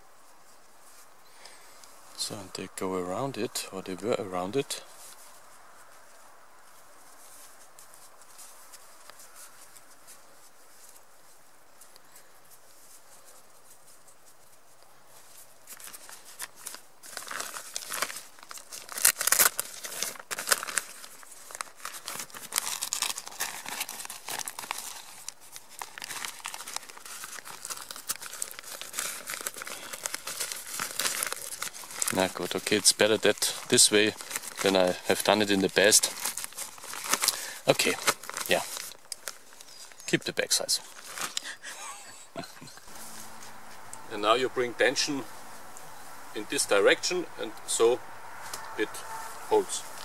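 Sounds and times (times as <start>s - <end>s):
stiff fabric crinkling: 3.3s - 47.9s.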